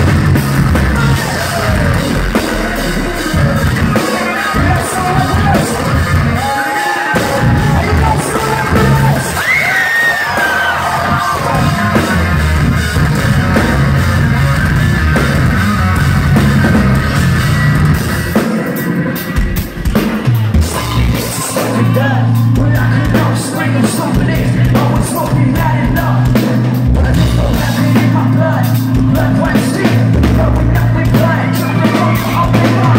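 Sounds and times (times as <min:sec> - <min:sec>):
heavy electric guitars: 0:00.0 - 0:32.9
metal band playing loud: 0:00.0 - 0:32.9
pounding drum kit: 0:00.0 - 0:32.9.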